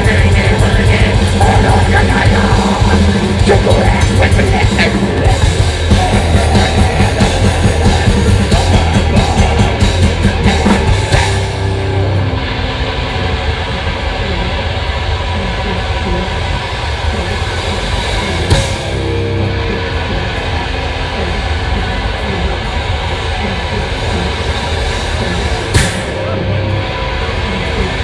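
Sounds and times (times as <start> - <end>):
distorted guitar drone: 0.0 - 28.0.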